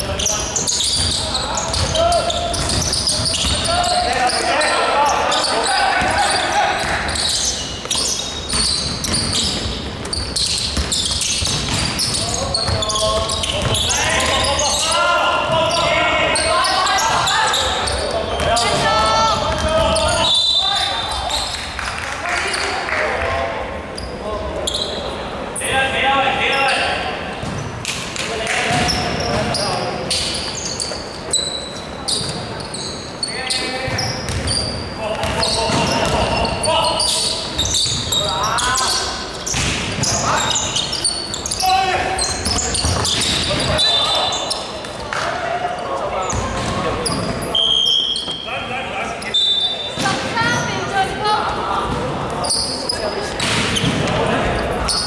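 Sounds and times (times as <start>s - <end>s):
sneaker squeaks: 0.0s - 22.8s, 23.9s - 55.0s
players calling out: 0.0s - 27.3s.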